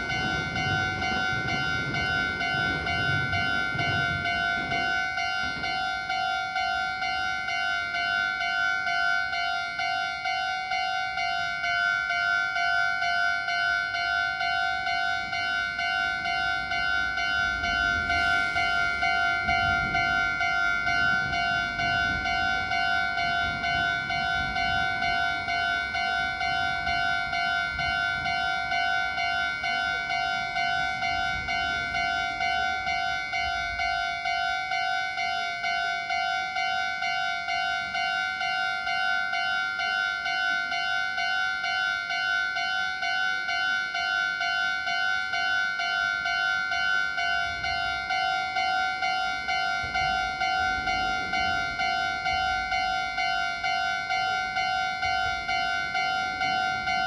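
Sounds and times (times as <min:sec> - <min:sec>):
level crossing alarm two-tone pulse: 0:00.0 - 0:57.0
train rumble: 0:00.0 - 0:57.0.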